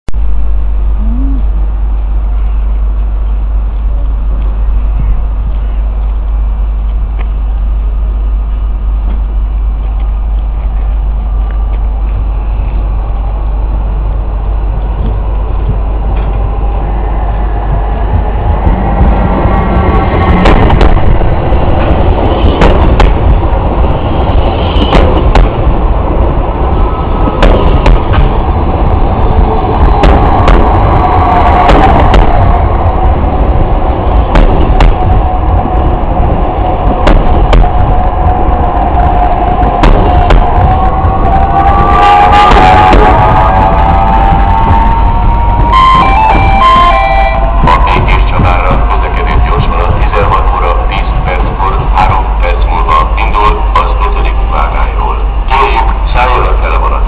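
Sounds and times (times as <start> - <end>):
train carriages rumbling past: 0.2 - 57.0.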